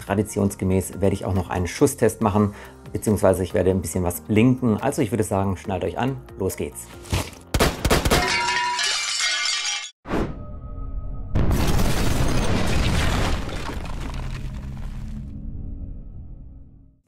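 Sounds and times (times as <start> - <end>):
crashing shattering effects: 11.4 - 15.2.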